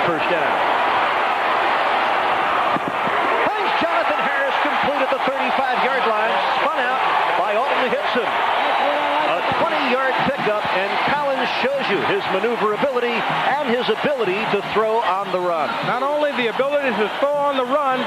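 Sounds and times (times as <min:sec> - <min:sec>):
men talking: 0:00.0 - 0:00.6, 0:03.4 - 0:18.0
stadium crowd cheering: 0:00.0 - 0:18.0.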